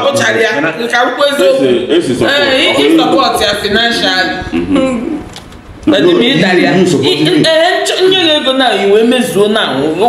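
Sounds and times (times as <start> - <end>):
loud wavering voice: 4.3 - 5.3.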